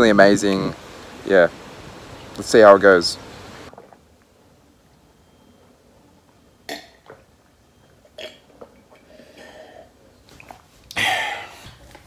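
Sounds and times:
person gulping water: 0:08.1 - 0:11.8.

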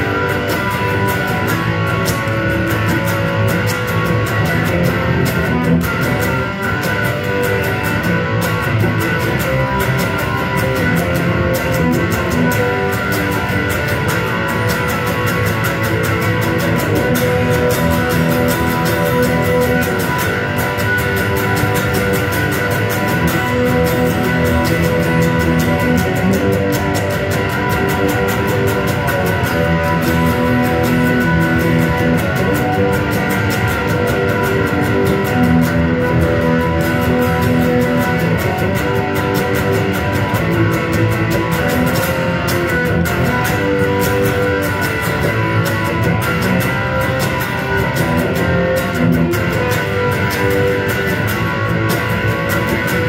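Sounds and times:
electric guitar chords: 0:00.0 - 0:53.0.

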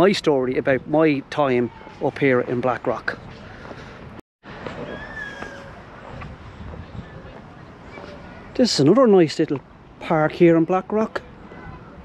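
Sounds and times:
quiet outdoor background noise: 0:00.0 - 0:12.0.

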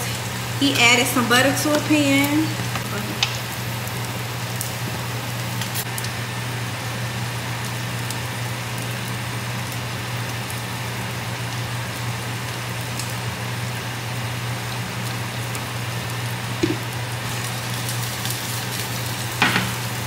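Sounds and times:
food sizzling in pans: 0:00.0 - 0:20.0.

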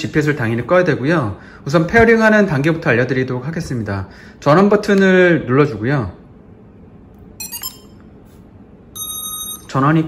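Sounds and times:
drone short beeps: 0:07.4 - 0:08.0, 0:08.9 - 0:09.8
drone long steady beep: 0:08.9 - 0:09.8.

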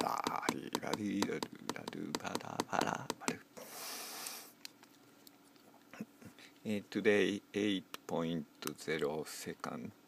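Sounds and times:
fingertip taps on touchscreen: 0:00.0 - 0:03.4
man singing rhythmically: 0:00.0 - 0:03.4.

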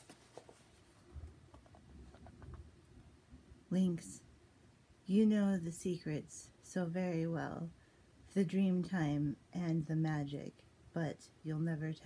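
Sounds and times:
paper book rustling: 0:00.0 - 0:02.5.

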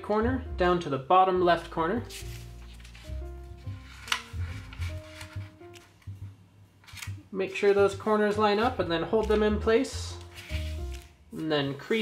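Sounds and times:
slow background music: 0:00.0 - 0:12.0
paper rustling and folding: 0:02.0 - 0:06.1, 0:06.8 - 0:09.4, 0:10.1 - 0:12.0
paper crinkle: 0:02.1 - 0:05.9, 0:06.8 - 0:08.1, 0:10.1 - 0:11.1.

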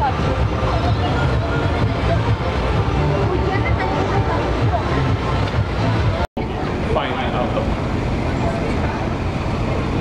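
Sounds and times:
faint voices: 0:00.0 - 0:10.0
vehicle and crowd rumble: 0:00.0 - 0:10.0.

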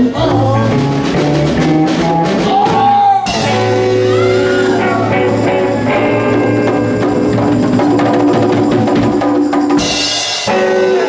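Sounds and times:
congas: 0:00.0 - 0:11.0
live band playing: 0:00.0 - 0:11.0.

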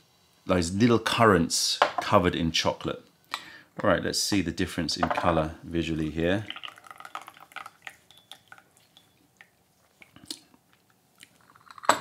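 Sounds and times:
tea trickling and dripping: 0:05.2 - 0:12.0.

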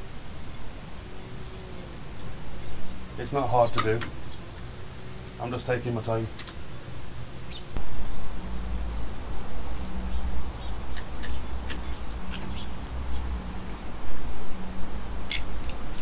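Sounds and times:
low steady rumble: 0:07.8 - 0:16.0.

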